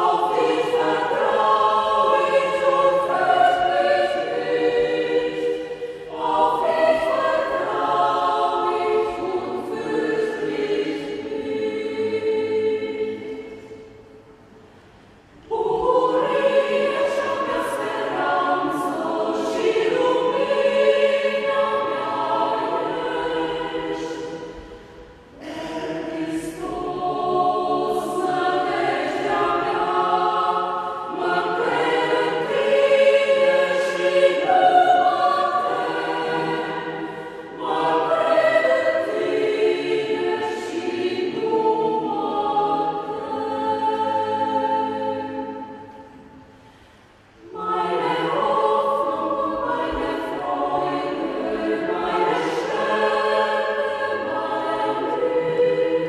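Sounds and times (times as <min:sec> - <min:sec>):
mixed choir singing: 0:00.0 - 0:56.0.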